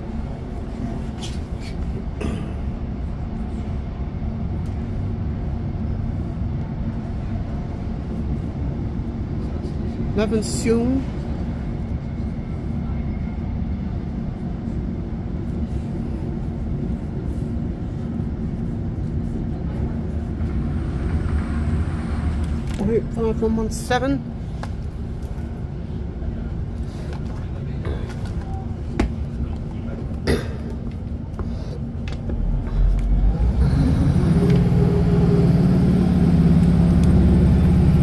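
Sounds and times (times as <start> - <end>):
constant hum: 0.0 - 38.0
train engine and wheels rumbling: 0.0 - 38.0
passing train rushing: 19.5 - 26.6, 32.4 - 38.0.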